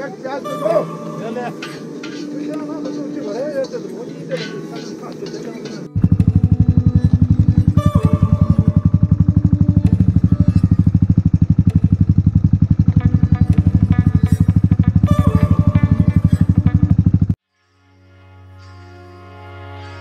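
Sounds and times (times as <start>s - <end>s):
motorcycle engine at low revs: 5.9s - 17.4s.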